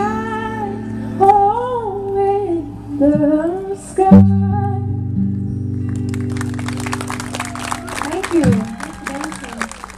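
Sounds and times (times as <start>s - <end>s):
audience clapping: 5.8s - 9.9s.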